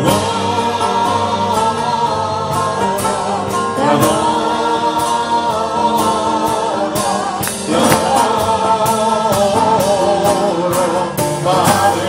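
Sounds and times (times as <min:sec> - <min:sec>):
guitar strokes: 0:02.5 - 0:09.8.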